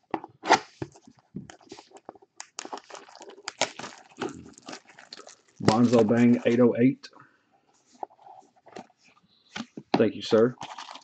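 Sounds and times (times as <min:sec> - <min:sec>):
plastic wrapping crinkling: 0:00.8 - 0:06.7, 0:10.5 - 0:11.0
packaging tearing: 0:01.5 - 0:06.5, 0:10.6 - 0:11.0.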